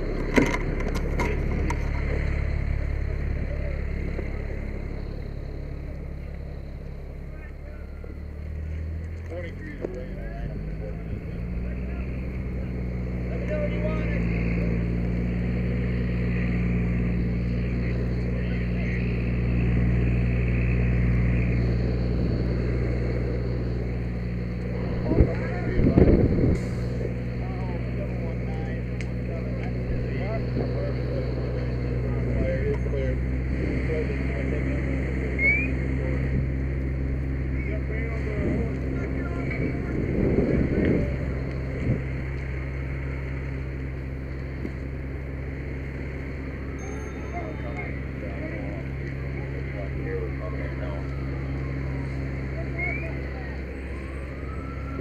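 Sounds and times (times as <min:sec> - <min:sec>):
diesel engine droning: 0:00.0 - 0:55.0.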